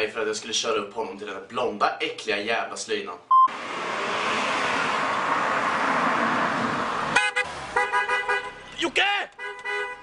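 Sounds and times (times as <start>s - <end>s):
road noise: 3.2s - 10.0s
car horn honking: 7.1s - 8.7s, 9.3s - 10.0s.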